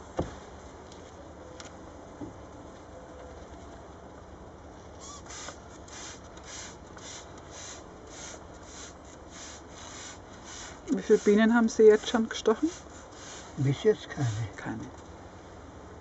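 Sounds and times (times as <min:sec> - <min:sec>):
hand pump sprayer hissing squirts: 0:05.0 - 0:14.6.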